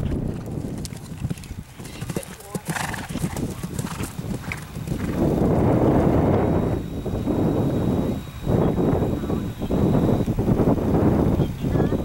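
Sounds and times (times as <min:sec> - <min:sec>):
horse hoofbeats: 0:00.0 - 0:05.4.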